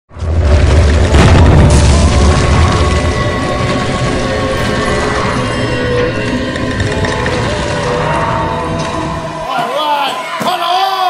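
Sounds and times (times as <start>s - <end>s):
cinematic boom with rumble: 0.1s - 8.9s
music: 0.6s - 11.0s.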